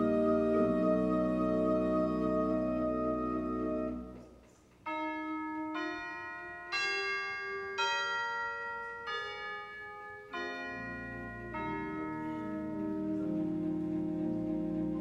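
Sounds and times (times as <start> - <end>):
low organ bass notes: 0.0 - 4.4, 10.2 - 15.0
organ playing slow melody: 0.0 - 15.0.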